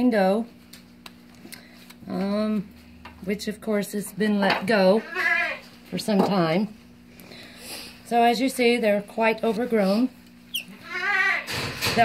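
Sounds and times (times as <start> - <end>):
goat bleating: 5.0 - 5.7, 10.7 - 11.5.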